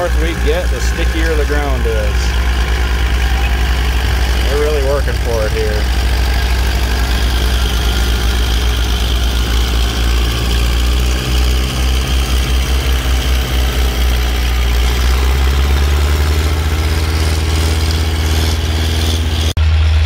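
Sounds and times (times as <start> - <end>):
tractor diesel engines under load: 0.0 - 20.0.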